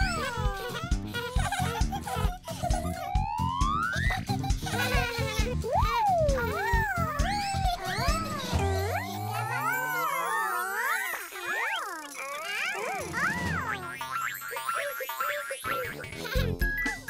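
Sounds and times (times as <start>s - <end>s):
playful cartoon music: 0.0s - 17.0s.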